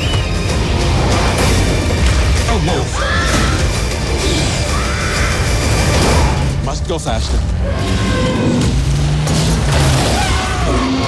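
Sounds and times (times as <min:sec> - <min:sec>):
trailer music: 0:00.0 - 0:11.0
voices shouting and screaming: 0:02.7 - 0:06.5, 0:09.9 - 0:11.0.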